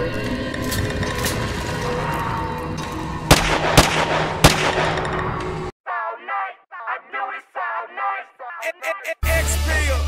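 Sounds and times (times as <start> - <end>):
gunshots: 3.3 - 5.2.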